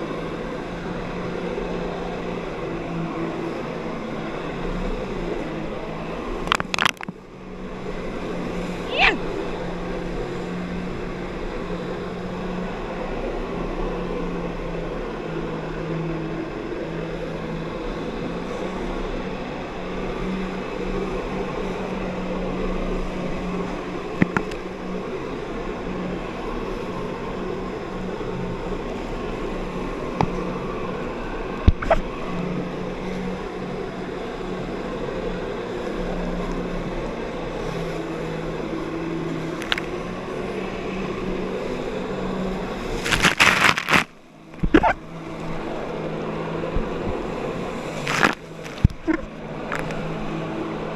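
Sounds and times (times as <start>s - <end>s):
rushing water: 0.0s - 15.5s, 36.0s - 50.9s
jet ski engine at high revs: 0.0s - 50.9s.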